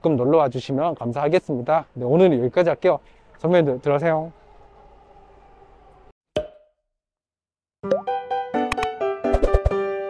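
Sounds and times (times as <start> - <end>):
pop sound effect: 6.4 - 6.8, 7.8 - 8.1, 8.7 - 9.8.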